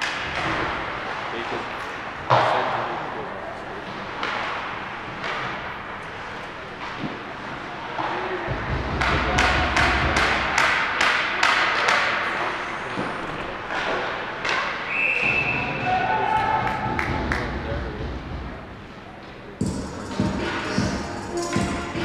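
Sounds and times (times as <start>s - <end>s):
hockey sticks and puck knocking: 0.0s - 1.1s, 2.3s - 2.8s, 3.8s - 17.6s.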